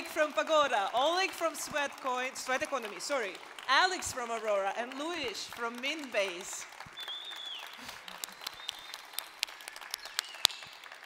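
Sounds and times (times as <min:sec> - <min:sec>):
audience applause: 0:00.0 - 0:11.0.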